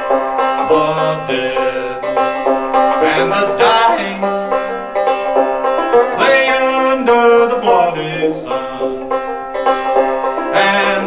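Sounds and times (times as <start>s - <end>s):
banjo plucking: 0.0s - 11.0s.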